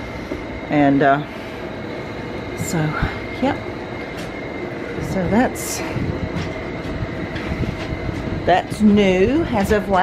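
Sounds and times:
high-pitched hum: 0.0 - 10.0
low rumbling noise: 0.0 - 10.0.

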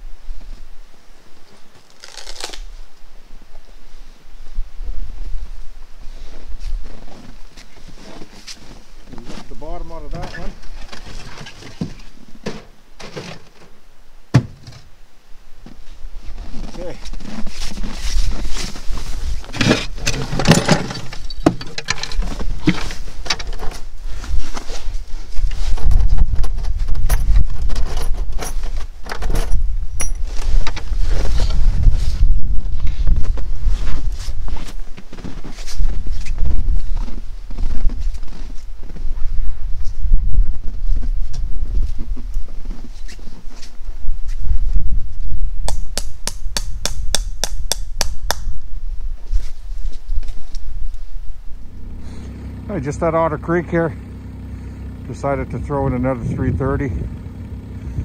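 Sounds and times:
sharp taps: 45.7 - 48.5
low rumble: 48.5 - 58.0.

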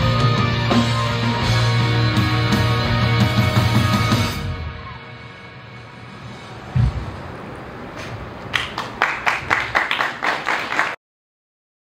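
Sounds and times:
wash of sound: 5.6 - 8.5
low thump: 6.7 - 7.3
people clapping: 8.0 - 11.0.

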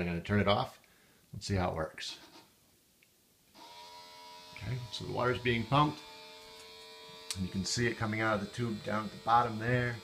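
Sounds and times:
electric pump humming: 3.6 - 10.0.

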